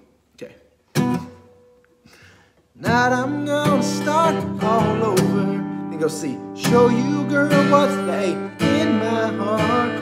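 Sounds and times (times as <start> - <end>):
acoustic guitar chord strummed: 0.9 - 10.0.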